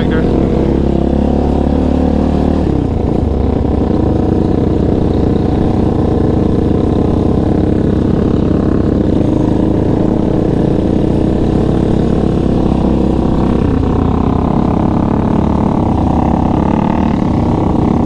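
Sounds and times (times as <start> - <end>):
quad engine running: 0.0 - 18.0.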